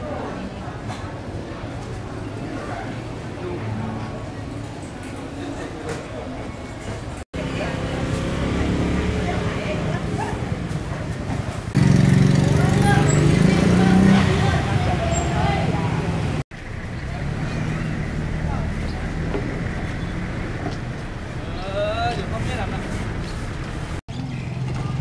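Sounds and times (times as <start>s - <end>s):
many people talking: 0.0s - 25.0s
vehicle engine running: 11.7s - 21.4s.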